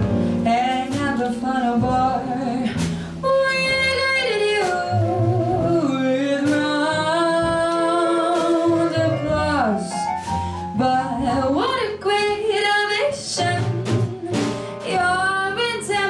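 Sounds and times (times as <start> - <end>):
bass: 0.0 - 16.0
drums: 0.0 - 16.0
piano: 0.0 - 16.0.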